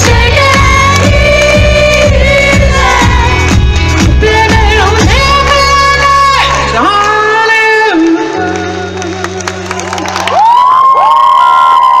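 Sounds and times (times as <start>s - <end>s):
live pop band playing: 0.0s - 10.2s
crowd cheering: 9.3s - 12.0s.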